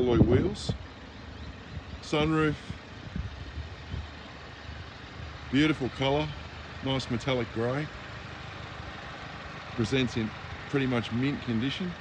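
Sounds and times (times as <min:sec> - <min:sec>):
car engine idling hum: 0:00.0 - 0:12.0.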